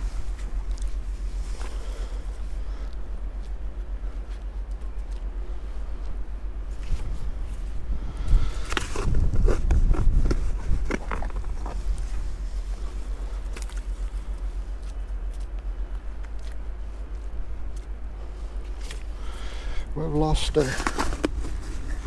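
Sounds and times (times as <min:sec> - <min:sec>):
steady low rumble: 0:00.0 - 0:22.0.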